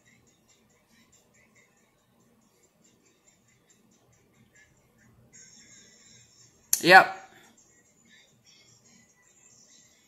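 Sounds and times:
person saying yep: 6.8 - 7.2.

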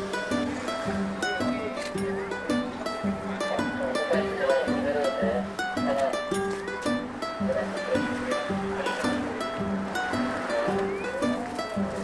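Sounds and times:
upbeat plucked string music: 0.0 - 12.0.

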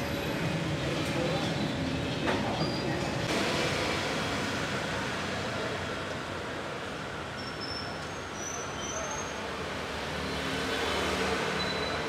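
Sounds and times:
motorbike street traffic rumble: 0.0 - 12.0.

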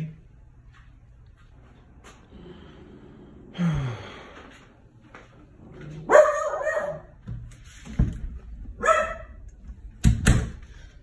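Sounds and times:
dog barking: 6.0 - 7.2, 8.8 - 9.4.

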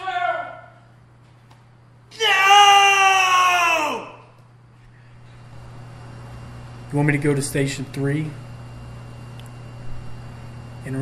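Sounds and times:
man screaming: 2.1 - 4.3.

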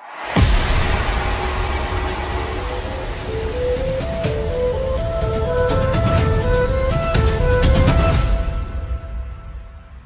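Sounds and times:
airy hiss: 0.0 - 5.4
low rumble: 0.4 - 6.1.

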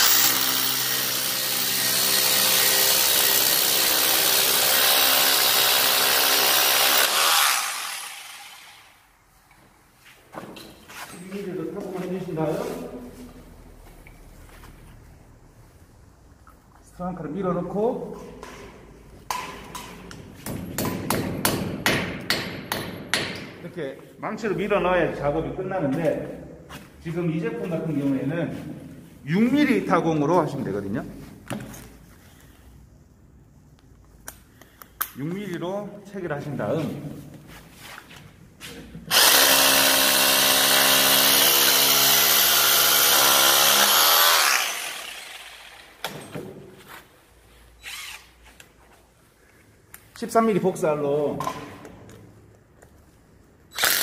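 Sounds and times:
drill boring into concrete: 0.0 - 9.0, 39.1 - 46.1, 47.8 - 48.3, 53.7 - 54.0.

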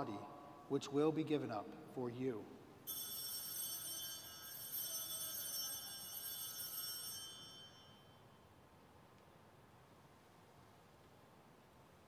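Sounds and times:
small bells jingling: 2.8 - 8.4.

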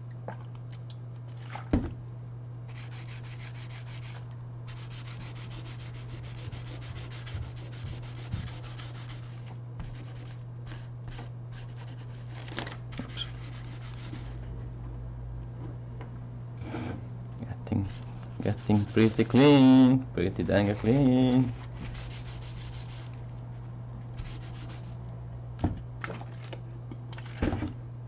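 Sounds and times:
steady low hum: 0.0 - 28.0
cloth rubbing on plastic: 2.7 - 14.4, 17.9 - 19.6, 20.4 - 23.2, 24.2 - 25.0.

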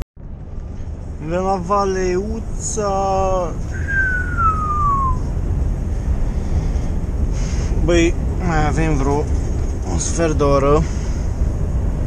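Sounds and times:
lorry engine and tyres droning: 0.2 - 12.0
thin tone sliding down in pitch: 3.8 - 5.3.

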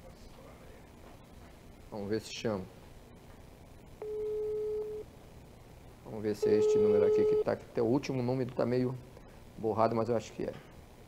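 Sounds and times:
telephone ringback tone: 4.0 - 5.0, 6.4 - 7.5.

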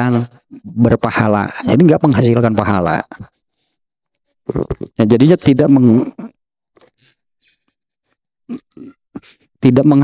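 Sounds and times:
man lecturing: 0.0 - 3.3, 4.9 - 6.4, 9.6 - 10.0.

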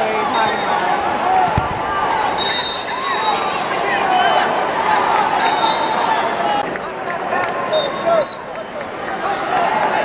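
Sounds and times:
spectators yelling and shouting: 0.0 - 10.0.

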